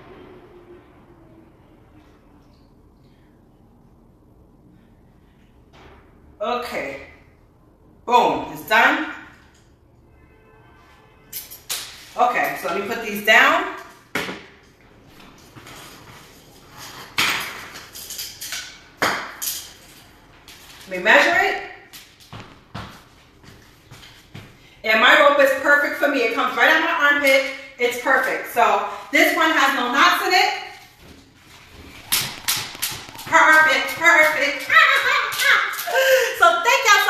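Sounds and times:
jump rope being moved: 0:30.8 - 0:36.2.

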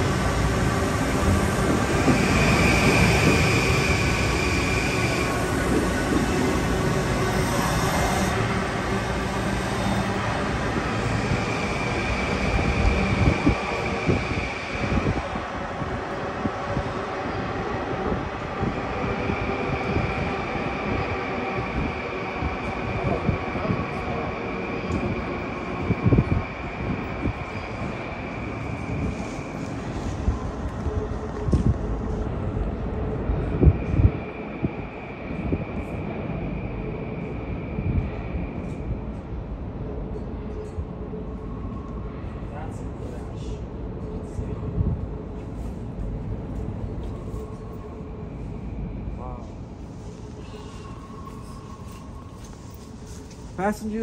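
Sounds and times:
train wheels rumbling on rail: 0:00.0 - 0:54.0.

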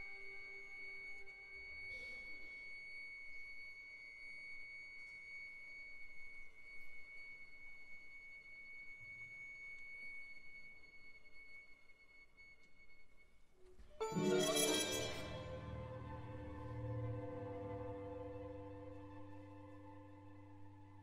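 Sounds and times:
violin holding high note: 0:14.0 - 0:17.8.

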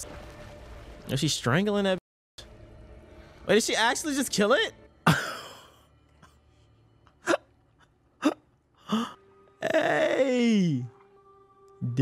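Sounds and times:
man laughing: 0:05.1 - 0:05.8.

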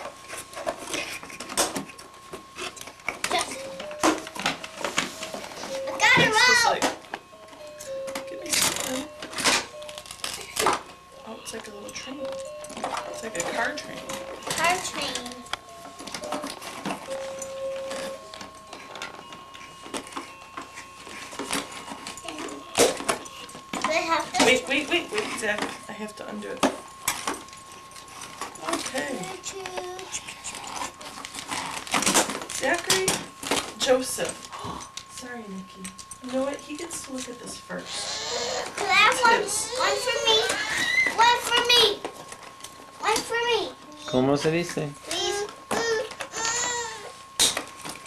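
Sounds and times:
toy packaging rustling: 0:00.0 - 0:11.1, 0:12.3 - 0:25.9, 0:26.6 - 0:33.8
toy playing electronic tune: 0:00.0 - 0:48.0
toddler's wavering vocal: 0:38.0 - 0:41.4, 0:45.2 - 0:47.1.

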